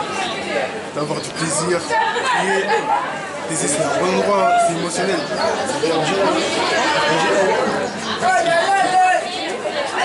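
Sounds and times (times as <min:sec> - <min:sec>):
overlapping voices chattering: 0:00.0 - 0:10.0.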